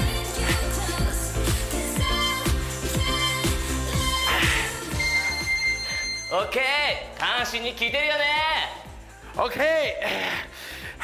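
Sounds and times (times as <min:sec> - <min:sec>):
electronic dance music: 0:00.0 - 0:11.0
long high beep: 0:04.9 - 0:07.1.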